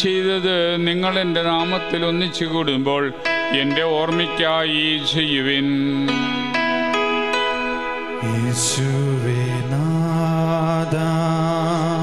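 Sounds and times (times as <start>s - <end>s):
man singing a chant: 0.0s - 6.4s, 8.2s - 12.0s
keyboard accompaniment: 0.0s - 12.0s.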